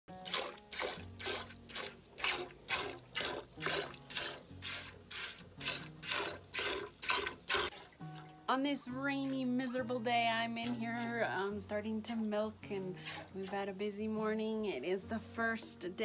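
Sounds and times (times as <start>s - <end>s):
milk squirting into steel pail: 0.1s - 8.4s, 9.1s - 9.9s, 10.5s - 12.3s, 13.0s - 13.6s.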